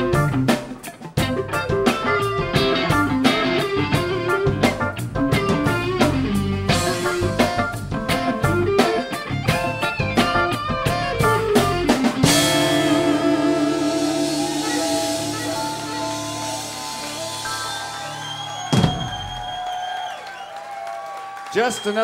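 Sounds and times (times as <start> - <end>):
electric guitar: 0.0 - 19.2
live rock band playing: 0.0 - 19.6
held chord ringing: 12.2 - 18.7.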